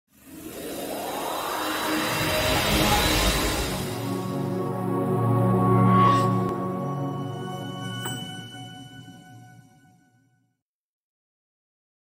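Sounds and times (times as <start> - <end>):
rising whoosh: 0.1 - 8.4
tone sliding upward: 0.2 - 9.5.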